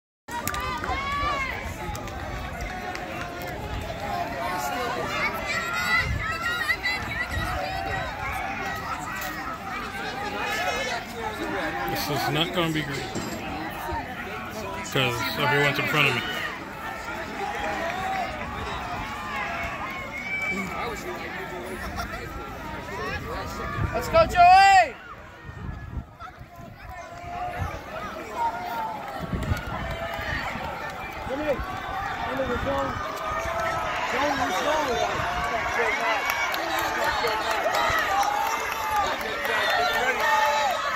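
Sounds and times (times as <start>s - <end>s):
spectators talking and calling out: 0.3s - 40.9s.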